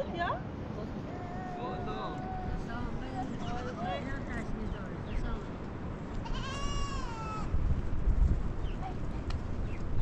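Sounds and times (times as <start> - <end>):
goat bleating: 6.2 - 7.4.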